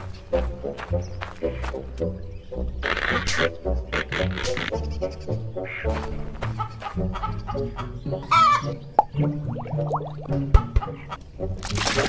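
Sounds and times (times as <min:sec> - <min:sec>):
background music: 0:00.0 - 0:12.0
chicken clucking and squawking: 0:05.1 - 0:08.8, 0:10.5 - 0:11.2.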